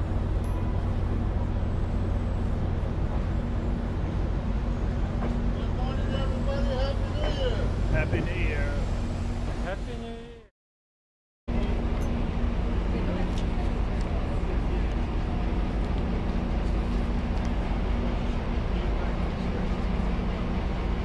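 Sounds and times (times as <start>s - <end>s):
diesel train rumble and hum: 0.0s - 10.5s, 11.5s - 21.0s.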